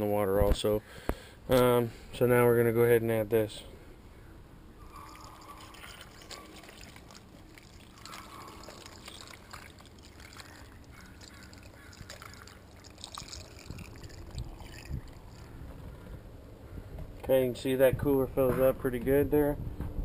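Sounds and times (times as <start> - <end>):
liquid pouring with splashes: 4.8 - 15.6.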